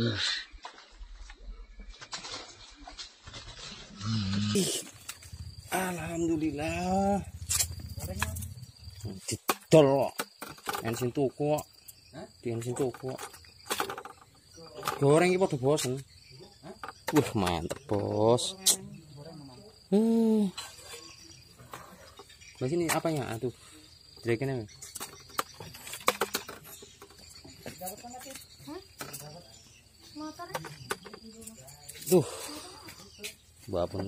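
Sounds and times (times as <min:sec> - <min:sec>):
crickets droning: 0:00.0 - 0:34.0
insects chirring: 0:00.0 - 0:34.0
man murmuring: 0:04.1 - 0:04.9, 0:19.9 - 0:20.6.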